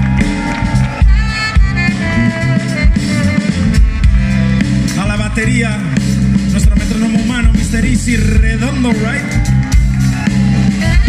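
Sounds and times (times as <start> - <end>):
saxophone: 0.0 - 5.0, 9.2 - 11.0
drum kit: 0.0 - 11.0
electric bass: 0.0 - 11.0.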